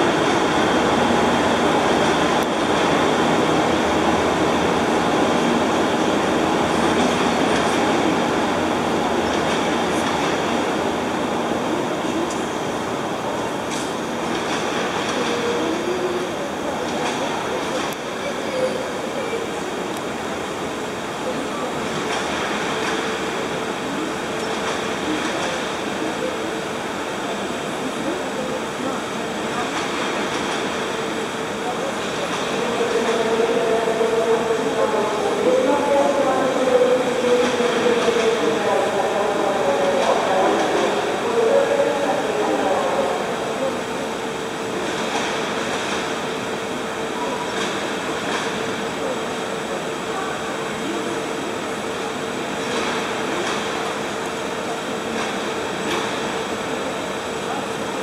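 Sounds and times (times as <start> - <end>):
locomotive humming: 0.0 - 58.0
train coaches rolling with rumble: 0.0 - 58.0.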